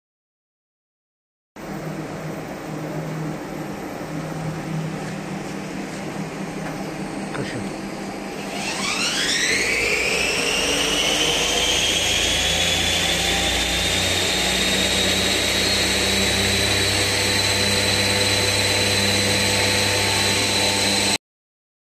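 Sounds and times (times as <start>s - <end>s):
steady low hum: 1.6s - 9.4s
machine spindle whine: 1.6s - 21.2s.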